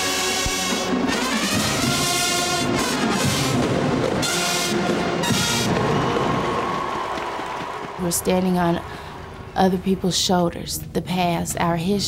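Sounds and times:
marching band brass note: 0.0 - 8.2
stadium crowd applause: 3.2 - 9.6.

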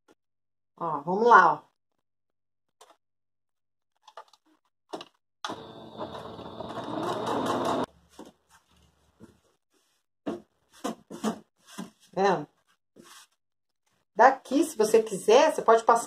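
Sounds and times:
electric sewing machine stitching: 5.4 - 7.9.

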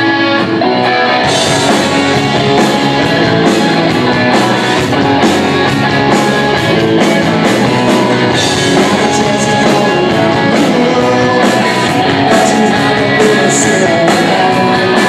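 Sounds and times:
bass guitar: 0.0 - 15.0
loud electric guitar: 0.0 - 15.0
drums keeping steady beat: 0.2 - 15.0.

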